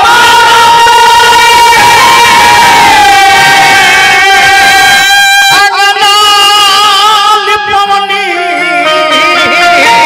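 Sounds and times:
man singing a long high note: 0.0 - 10.0.

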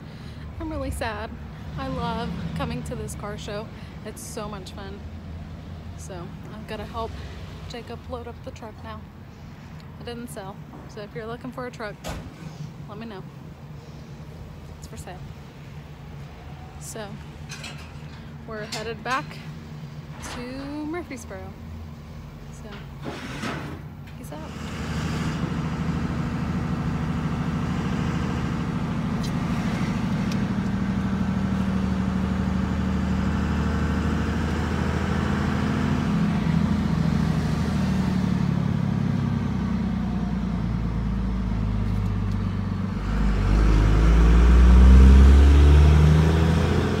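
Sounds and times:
vehicle engine and road noise: 0.0 - 47.0.

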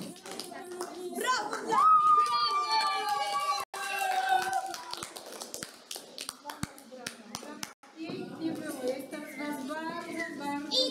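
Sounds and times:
people clapping: 0.0 - 7.8.

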